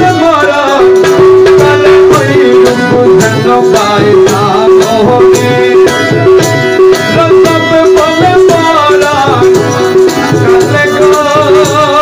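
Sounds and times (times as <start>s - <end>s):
hand-percussion rhythm: 0.0s - 12.0s
plucked-string melody: 0.1s - 12.0s.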